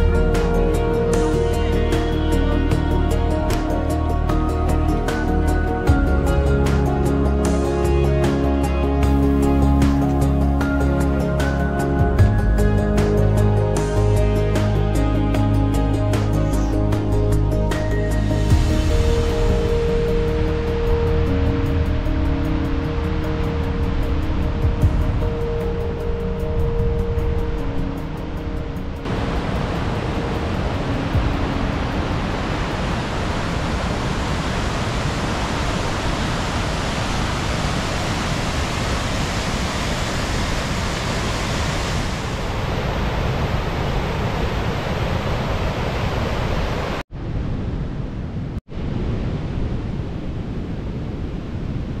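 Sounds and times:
river rushing over rocks: 0:29.0 - 0:47.0.

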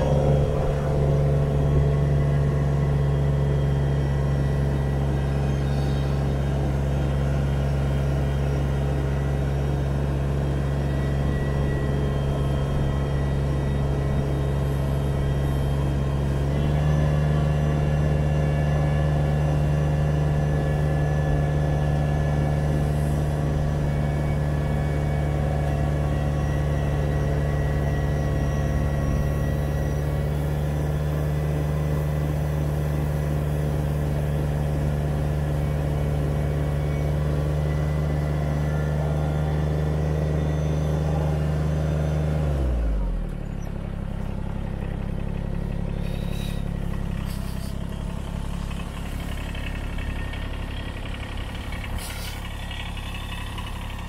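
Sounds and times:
tractor diesel engine running: 0:00.0 - 0:54.0.

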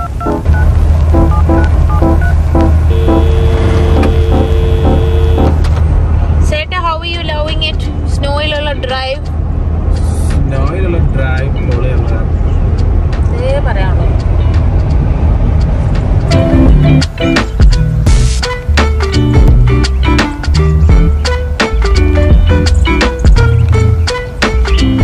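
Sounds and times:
car road and engine rumble: 0:00.0 - 0:25.0.

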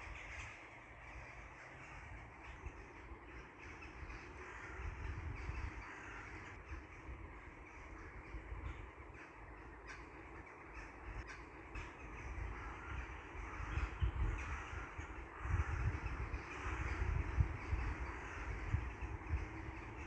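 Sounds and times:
birds calling: 0:00.0 - 0:20.0.

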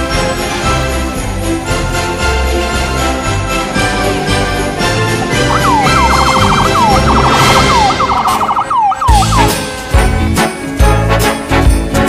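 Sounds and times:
emergency vehicle siren wailing: 0:05.2 - 0:09.7.

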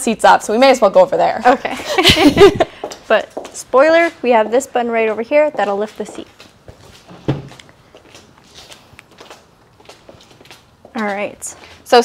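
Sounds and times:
shuffling footsteps: 0:02.0 - 0:12.0.

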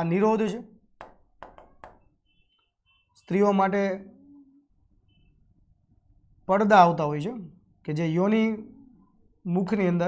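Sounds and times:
pen tapping on screen: 0:01.0 - 0:02.1.

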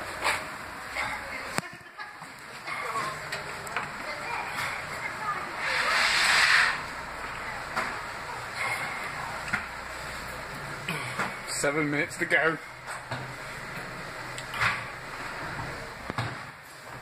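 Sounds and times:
hissing breath blown out: 0:05.6 - 0:06.8.

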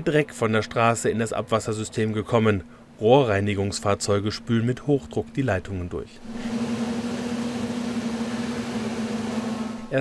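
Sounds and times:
truck pump machine hum: 0:06.2 - 0:10.0.

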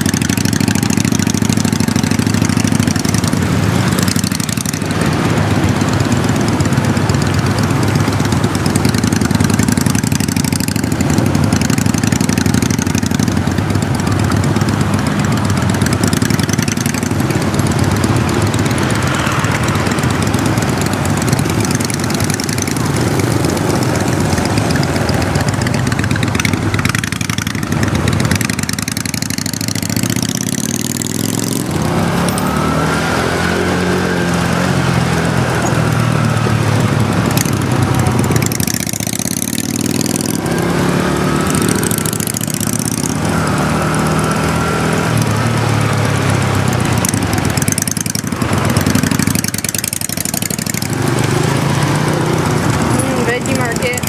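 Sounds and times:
motorcycle engine revving: 0:00.0 - 0:54.0
wind and road noise: 0:00.0 - 0:54.0.

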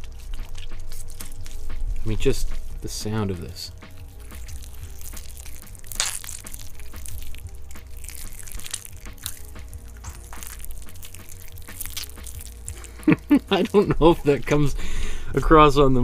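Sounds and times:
hands squishing wet clay: 0:00.0 - 0:14.6.

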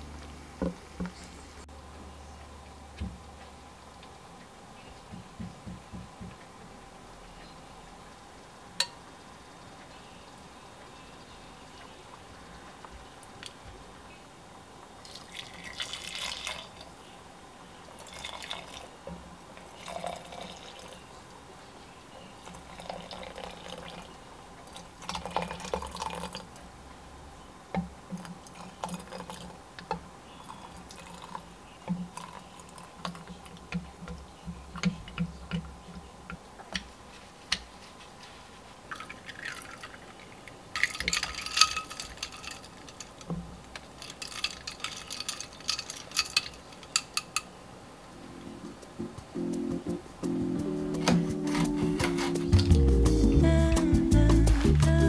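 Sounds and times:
liquid splashing into a pitcher: 0:38.9 - 0:43.1
ladle clicking against glass: 0:40.8 - 0:47.5.

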